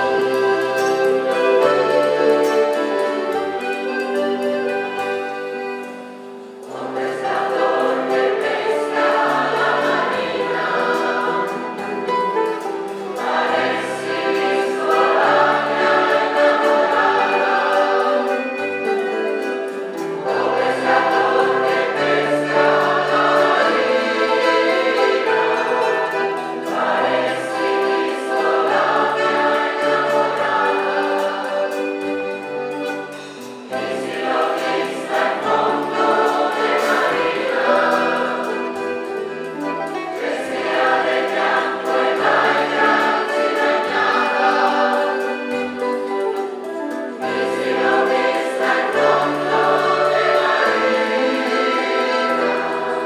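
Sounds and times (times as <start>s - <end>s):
folk band playing: 0.0s - 53.0s
large choir singing folk song: 0.0s - 53.0s.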